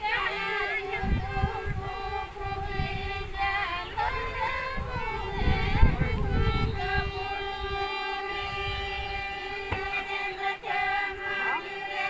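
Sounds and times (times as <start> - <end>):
women singing together: 0.0 - 12.0
barrel drum beating softly: 9.6 - 10.2.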